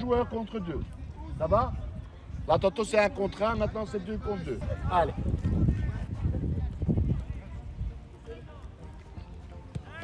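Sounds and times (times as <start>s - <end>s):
running feet: 4.5s - 10.0s
ball being kicked: 9.6s - 10.0s.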